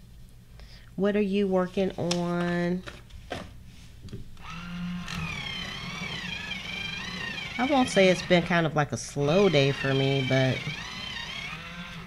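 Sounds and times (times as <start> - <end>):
pencil sharpener grinding: 4.4 - 12.0.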